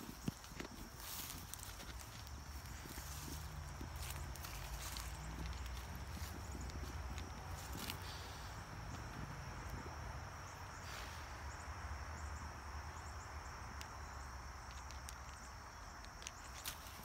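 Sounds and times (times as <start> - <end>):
footsteps on grass: 0.0 - 8.4, 16.4 - 17.0
faint low rumble: 0.2 - 11.6.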